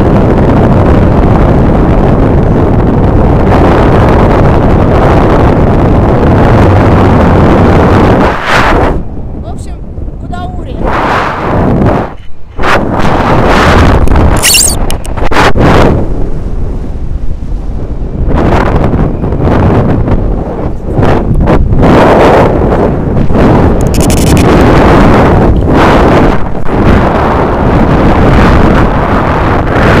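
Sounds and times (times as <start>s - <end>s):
wind buffeting microphone: 0.0s - 30.0s.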